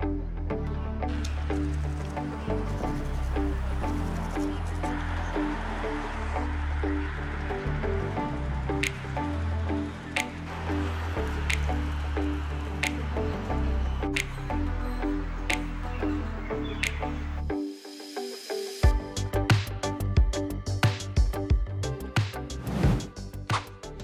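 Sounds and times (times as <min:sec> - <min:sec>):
sustained bass notes: 0:00.0 - 0:17.5.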